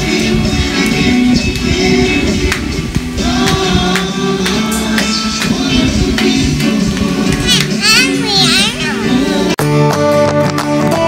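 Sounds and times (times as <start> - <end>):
worship song from television: 0.0 - 11.0
small child's high voice: 7.4 - 9.2.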